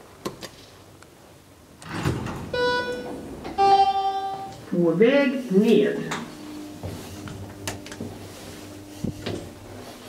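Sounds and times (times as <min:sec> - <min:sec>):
elevator doors sliding open: 0:01.8 - 0:04.7, 0:05.9 - 0:10.0.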